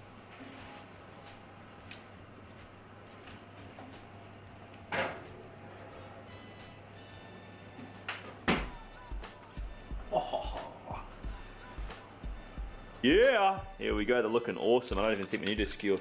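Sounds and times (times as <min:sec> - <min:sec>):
music with pulsing bass beat: 0:08.7 - 0:14.1.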